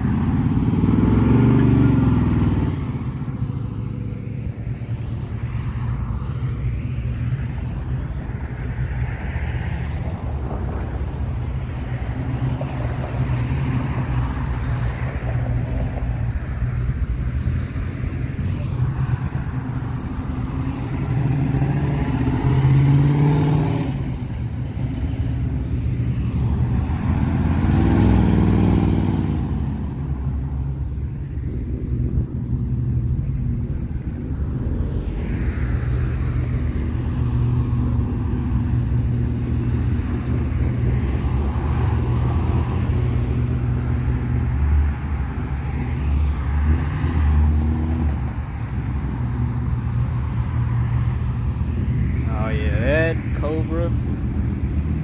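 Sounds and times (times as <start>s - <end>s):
cars accelerating: 0.0s - 55.0s
cars driving past: 0.0s - 55.0s.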